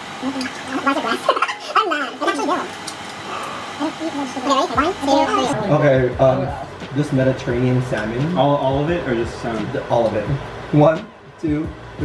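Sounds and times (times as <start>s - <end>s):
indistinct chatter: 0.2s - 6.8s.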